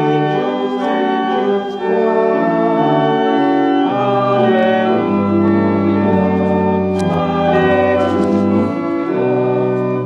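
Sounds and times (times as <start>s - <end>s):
church organ playing a hymn: 0.0s - 10.0s.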